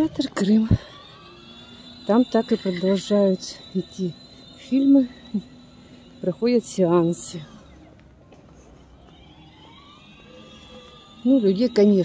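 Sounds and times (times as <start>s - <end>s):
faint high electronic tones: 0.0s - 12.0s
open-air town square background: 0.0s - 12.0s.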